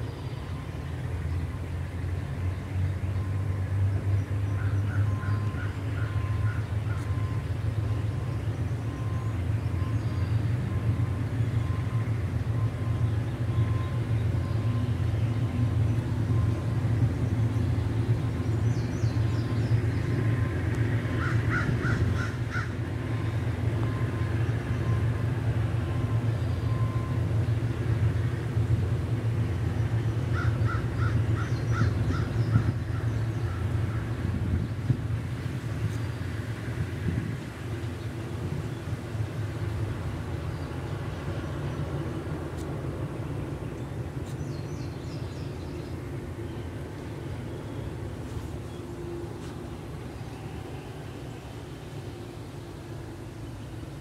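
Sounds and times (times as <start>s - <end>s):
distant diesel locomotive rumble: 0.0s - 54.0s.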